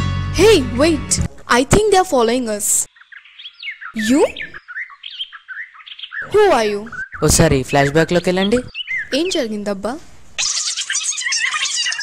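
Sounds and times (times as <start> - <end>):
birds chirping: 1.9 - 12.0.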